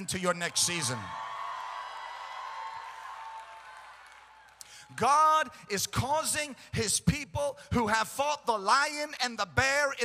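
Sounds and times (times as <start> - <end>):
person preaching: 0.0 - 1.1, 4.8 - 10.0
faint applause and cheers: 0.1 - 5.1.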